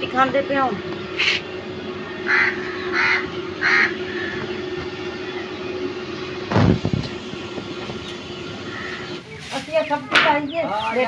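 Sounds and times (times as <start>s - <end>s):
steady low hum: 0.0s - 11.0s
bird harsh calls: 1.1s - 6.2s, 7.7s - 11.0s.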